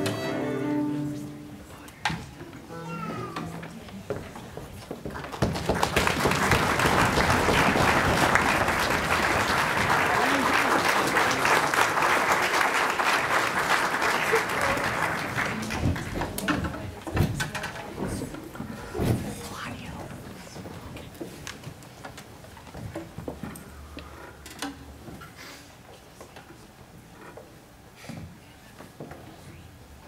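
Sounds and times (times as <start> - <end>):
audience applauding: 5.1 - 16.6.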